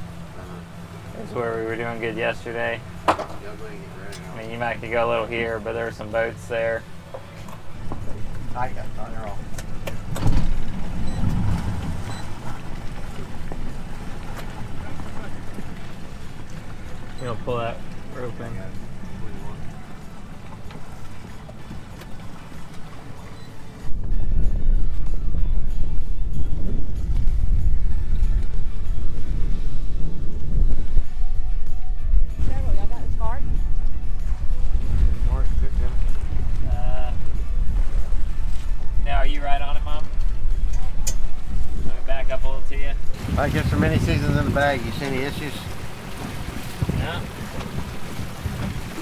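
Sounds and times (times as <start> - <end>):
wind buffeting microphone: 2.2 - 49.0.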